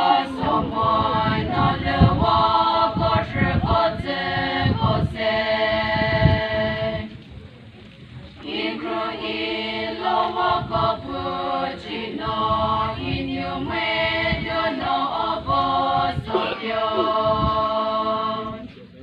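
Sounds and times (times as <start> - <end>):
women's choir singing: 0.0 - 7.2, 8.4 - 18.7.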